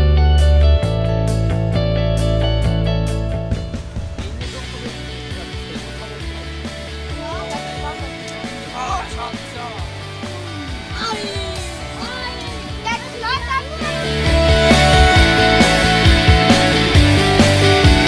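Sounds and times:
background music: 0:00.0 - 0:18.0
children calling and chattering: 0:04.2 - 0:17.8.

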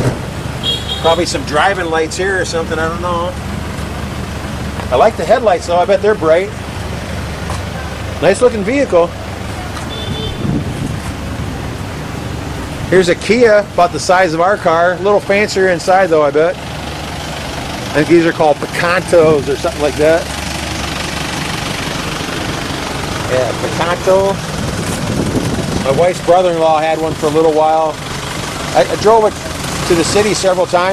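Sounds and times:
engine idling: 0:00.0 - 0:30.9
low traffic rumble: 0:00.0 - 0:30.9
wind noise on microphone: 0:09.9 - 0:11.5, 0:24.5 - 0:26.2.

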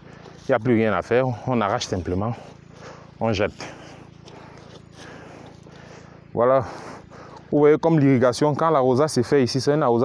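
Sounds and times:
steps rustling on dry grass: 0:00.0 - 0:07.6
low steady hum: 0:00.0 - 0:10.0.

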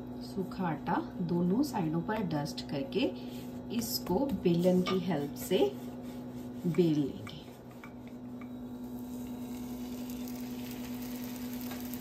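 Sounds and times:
steady low hum: 0:00.0 - 0:12.0
bread sizzling in oil: 0:08.0 - 0:12.0.

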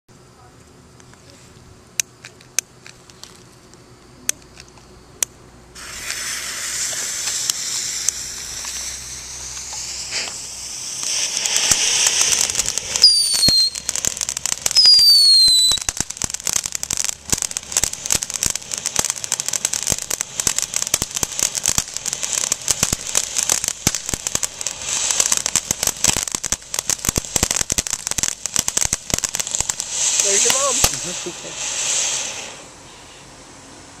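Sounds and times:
firework crackling: 0:00.3 - 0:34.0
firework hissing sparks: 0:02.0 - 0:34.0
short falling whistles: 0:13.0 - 0:13.9, 0:14.7 - 0:15.9.

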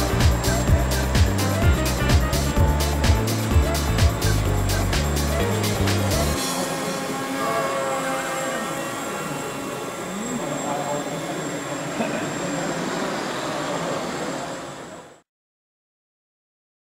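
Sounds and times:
people talking: 0:03.6 - 0:15.2
model plane motors and propellers: 0:06.6 - 0:15.2.

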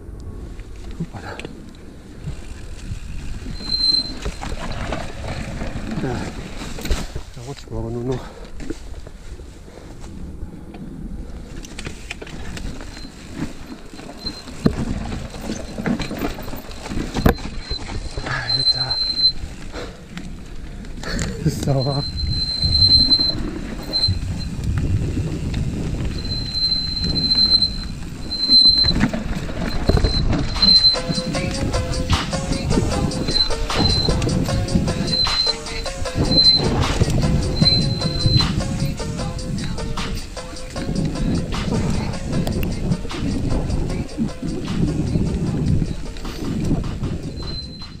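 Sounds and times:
wind on microphone: 0:00.0 - 0:07.4, 0:08.8 - 0:48.0
bike tyres rumbling on dirt: 0:00.0 - 0:48.0
disc brakes squealing: 0:02.4 - 0:07.5, 0:12.0 - 0:48.0
beat-driven music: 0:30.6 - 0:48.0.

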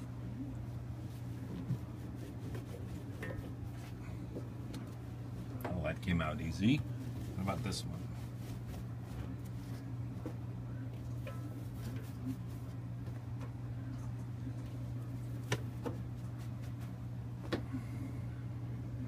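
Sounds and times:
steady low hum: 0:00.0 - 0:19.0
damp towels rustling: 0:00.7 - 0:05.5, 0:06.6 - 0:10.4.

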